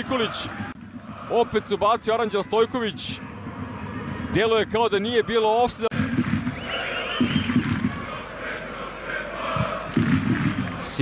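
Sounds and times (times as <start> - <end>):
stadium crowd roar: 0.0 - 11.0
crowd whistling: 6.0 - 10.8.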